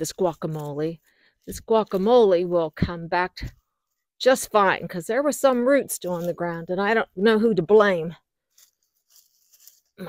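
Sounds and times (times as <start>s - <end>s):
gloved hands rustling soil: 0.0s - 2.9s, 5.7s - 6.9s, 8.2s - 10.0s.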